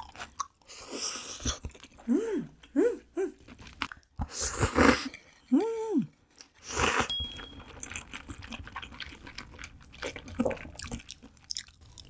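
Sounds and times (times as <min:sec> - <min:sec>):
wet chewing and lip-smacking: 0:00.0 - 0:04.4, 0:06.3 - 0:12.0
person slurping: 0:00.0 - 0:05.2, 0:06.6 - 0:07.1
person humming: 0:02.0 - 0:03.4, 0:05.5 - 0:06.2.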